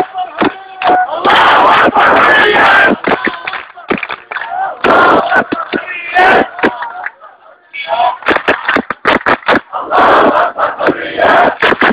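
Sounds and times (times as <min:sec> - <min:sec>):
rhythmic handclaps: 0:00.0 - 0:07.3, 0:08.1 - 0:11.9
crowd chanting in unison: 0:00.0 - 0:08.3, 0:09.4 - 0:11.9.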